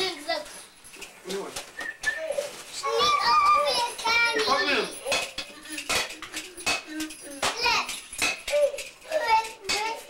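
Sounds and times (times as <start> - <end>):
child's high-pitched voice: 0.0 - 0.6, 2.2 - 5.3, 7.2 - 10.0
sharp clinks and knocks: 3.6 - 10.0.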